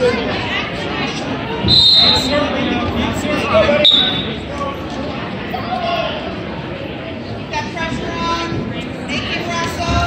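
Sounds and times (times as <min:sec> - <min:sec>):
voices in a large gym: 0:00.0 - 0:10.0
referee's whistle blasts: 0:01.6 - 0:02.4, 0:03.8 - 0:04.4.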